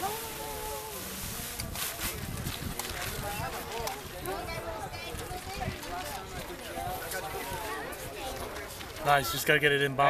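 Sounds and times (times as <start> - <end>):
wind buffeting microphone: 1.2 - 8.4.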